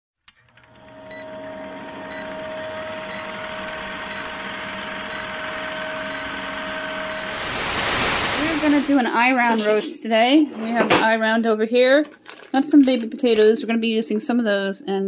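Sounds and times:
short beeps: 1.1s - 1.4s, 2.1s - 2.4s, 3.0s - 4.4s, 5.0s - 8.1s.

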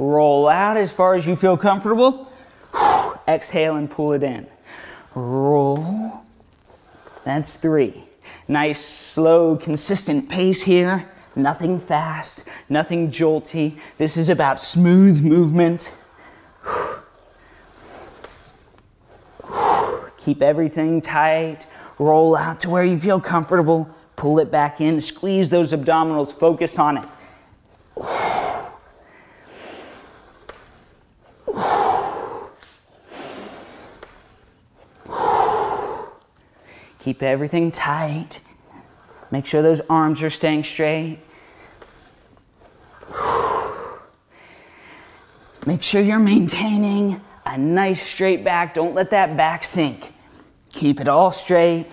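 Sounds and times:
ab wheel rolling on wooden floor: 0.0s - 51.9s.

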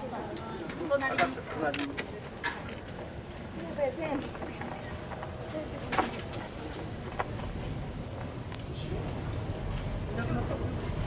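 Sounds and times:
low rumble of street noise: 0.0s - 11.0s.

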